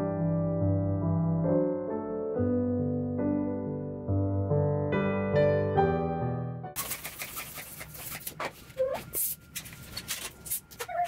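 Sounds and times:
balloon squeak: 7.7 - 9.4.

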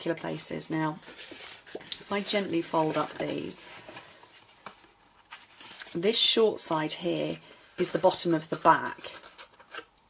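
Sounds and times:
paper rustling: 0.0 - 9.9.

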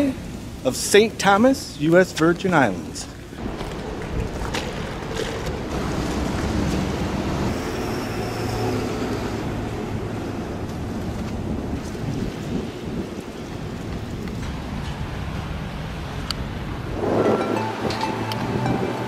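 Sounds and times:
wind buffeting microphone: 3.3 - 19.0.

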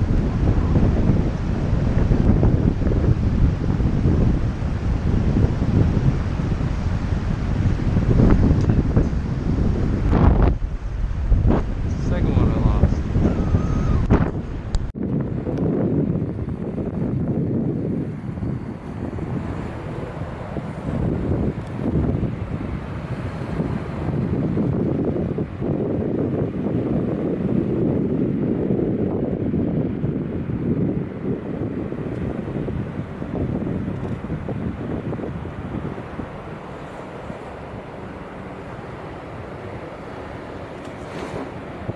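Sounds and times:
wind buffeting microphone: 0.0 - 41.9.

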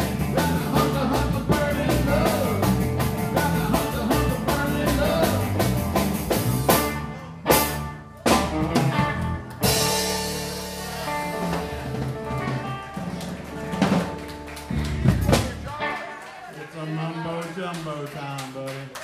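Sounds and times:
rock band playing: 0.0 - 16.4.

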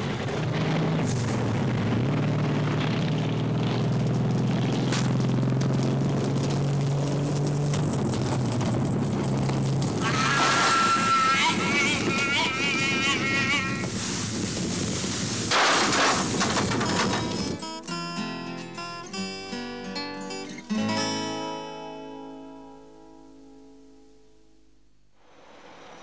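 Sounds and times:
loud rushing noise: 0.0 - 3.8, 9.8 - 17.6, 25.2 - 26.0
motorcycle engine running: 0.0 - 10.1
high wavering wail: 10.0 - 13.9.

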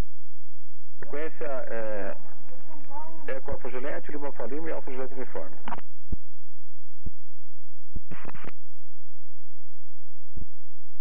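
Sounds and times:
faint low hum: 0.0 - 11.0
radio static burst: 1.0 - 5.8, 8.0 - 8.6.

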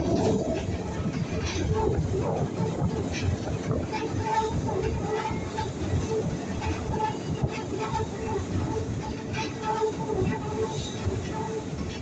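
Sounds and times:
train wheels rumbling on rail: 0.0 - 12.0.

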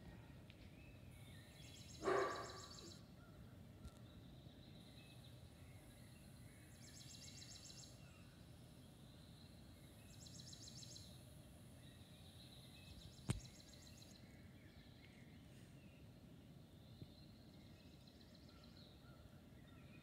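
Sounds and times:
nature ambience through television: 0.0 - 20.0.

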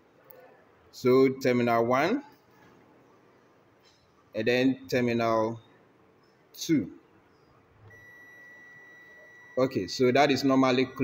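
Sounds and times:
multimeter continuity beep: 7.9 - 11.0.

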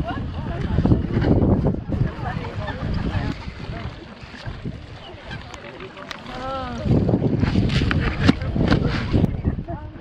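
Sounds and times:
swans scuffling and splashing: 0.0 - 10.0.

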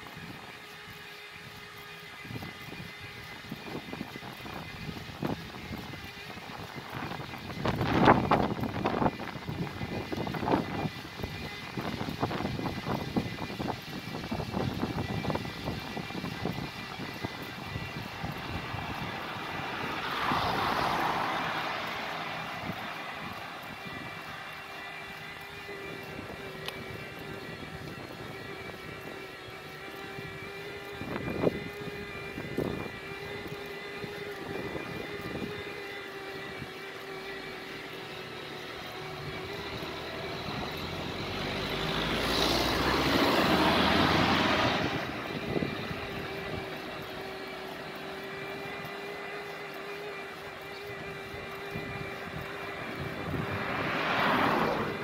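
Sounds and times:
electric bike motor whining: 0.0 - 55.0
tyre and road noise: 0.0 - 55.0
car passing: 17.8 - 27.3, 38.8 - 47.0, 52.2 - 55.0.

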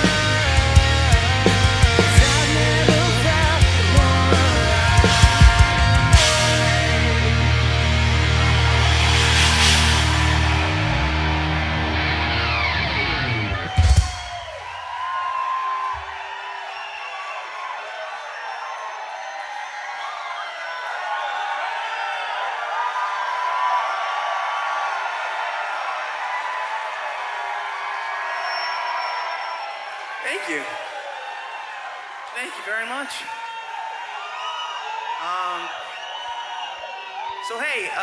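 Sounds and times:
rock band final chord: 0.0 - 14.1
audience cheering and whooping: 0.0 - 38.0.

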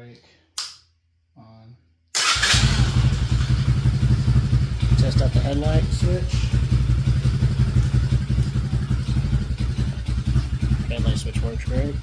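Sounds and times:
quad engine idling: 2.8 - 12.0.

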